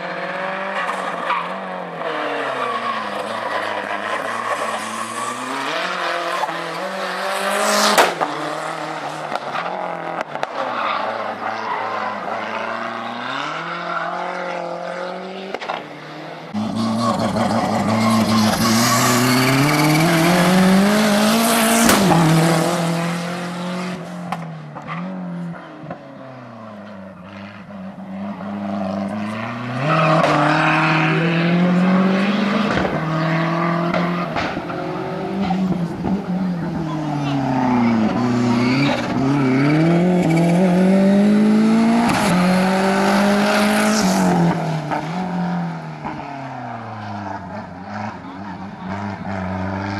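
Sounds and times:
car engine revving hard: 16.5s - 24.1s, 28.2s - 45.8s
tyre squeal: 16.6s - 20.4s.

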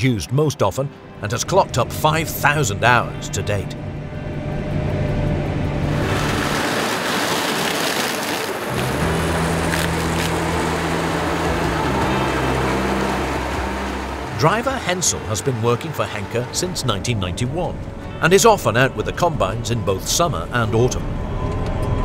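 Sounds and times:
combine harvester engine drone: 0.9s - 22.0s
crop rushing through thresher: 4.6s - 18.0s.

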